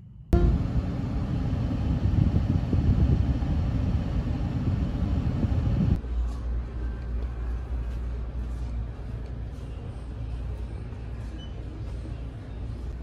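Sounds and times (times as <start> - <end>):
steady low hum: 0.0 - 13.0
car rumble from inside cabin: 0.4 - 6.0.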